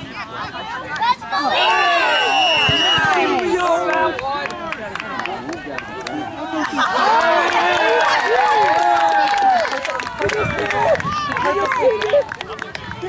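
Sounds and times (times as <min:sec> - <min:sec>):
spectators cheering and shouting: 0:00.0 - 0:04.7, 0:05.4 - 0:12.1.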